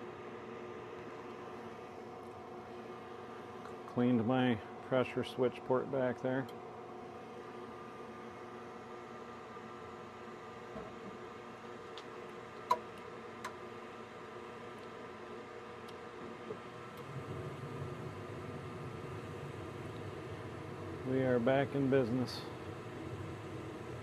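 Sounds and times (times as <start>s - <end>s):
furnace motor hum: 0.0s - 24.0s
low rumble of burner flame: 0.0s - 24.0s.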